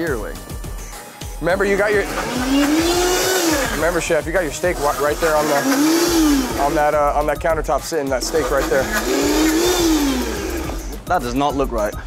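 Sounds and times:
blender motor running: 1.8 - 7.0, 8.2 - 11.0.

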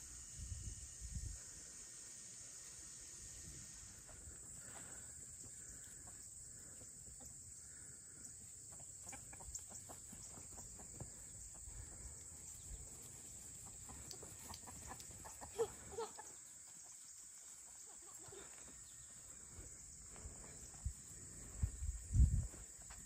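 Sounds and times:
high-pitched hiss: 0.0 - 8.6, 10.3 - 23.0
chicken calls: 5.5 - 19.7
chickens clucking: 5.6 - 19.0.

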